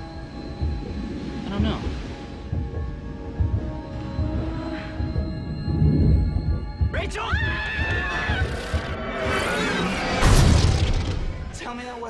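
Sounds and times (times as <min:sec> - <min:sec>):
sustained droning tones: 0:00.0 - 0:10.4.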